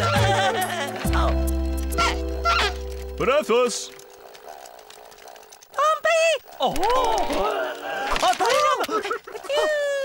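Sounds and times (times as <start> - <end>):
cartoon penguin nonsense calls: 2.0 - 2.8.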